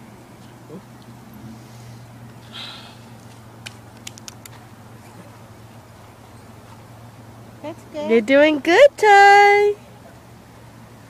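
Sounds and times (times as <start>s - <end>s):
steady low hum: 0.0s - 11.0s
faint clicks: 3.2s - 4.6s.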